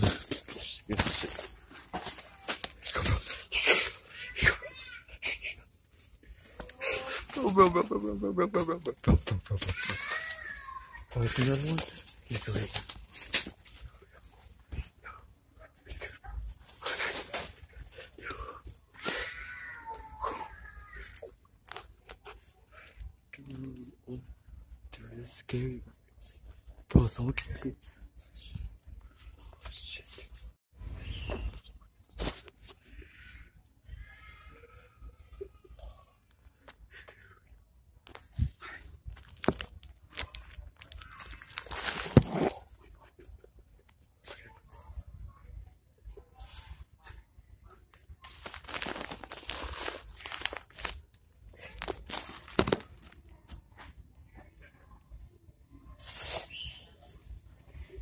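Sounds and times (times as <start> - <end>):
rustling crinkling handling noise: 0.0 - 4.3, 5.9 - 15.0, 39.0 - 43.4, 48.2 - 53.8
plastic wrapping crinkling: 11.1 - 13.8, 39.1 - 42.6, 48.2 - 53.2.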